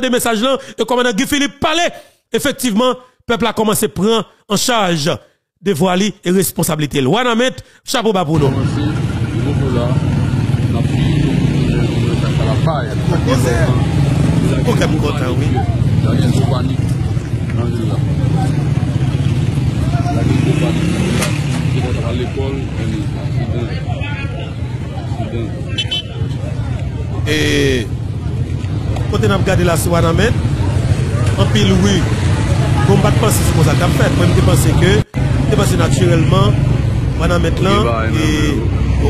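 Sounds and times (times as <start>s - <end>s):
motorcycle engine running: 8.4s - 34.6s
hubbub of voices: 8.4s - 39.0s.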